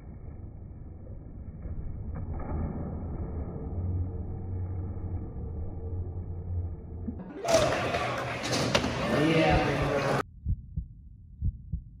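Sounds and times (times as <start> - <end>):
loud contest background noise: 7.2 - 10.2
heartbeat thumps: 9.4 - 12.0.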